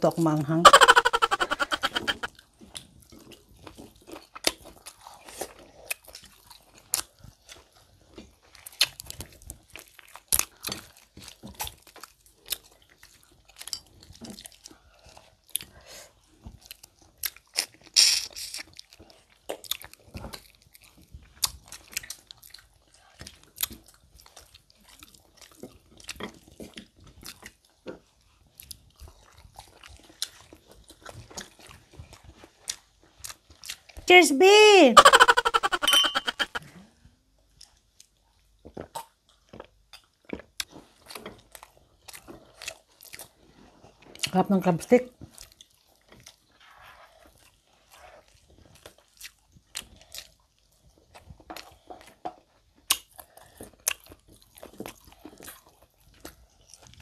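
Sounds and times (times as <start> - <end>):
chewing and crunching: 1.8 - 34.1, 36.6 - 57.0
wet mouth clicks and smacks: 16.7 - 20.0, 52.9 - 53.2.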